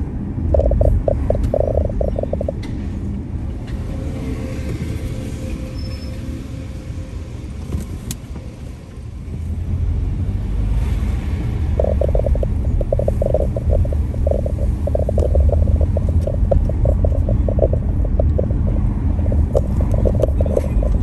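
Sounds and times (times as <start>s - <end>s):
car driving rumble: 0.0s - 21.0s
rapid fluttering rattle: 0.5s - 2.6s, 11.7s - 21.0s.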